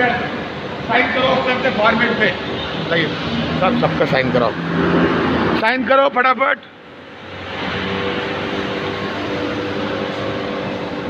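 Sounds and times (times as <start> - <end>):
factory machinery hum: 0.0 - 11.0.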